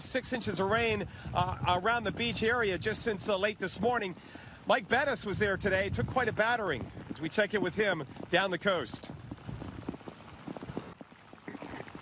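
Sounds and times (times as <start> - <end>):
raindrops ticking: 0.0 - 12.0
wind buffeting microphone: 0.0 - 12.0.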